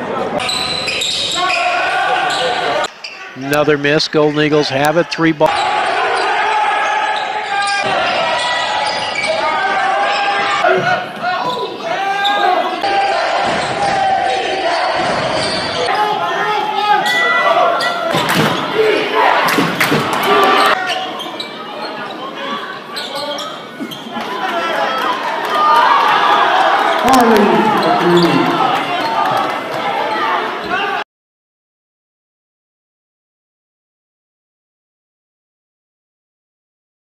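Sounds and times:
crowd and player voices: 0.0 - 31.0
sneakers squeaking: 0.4 - 3.4, 7.1 - 9.4, 10.0 - 12.7, 13.4 - 16.0, 19.6 - 24.3, 26.9 - 29.4.

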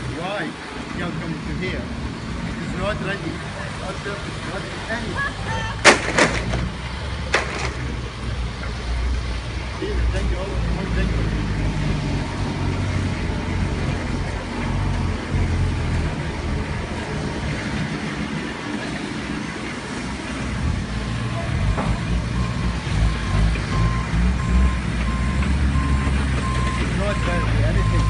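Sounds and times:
heavy vehicle engine running: 0.0 - 28.0
reversing alarm beeping: 22.4 - 28.0.

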